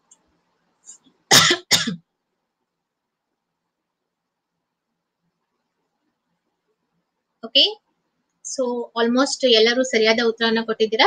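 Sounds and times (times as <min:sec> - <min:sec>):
woman coughing: 0:01.3 - 0:02.0.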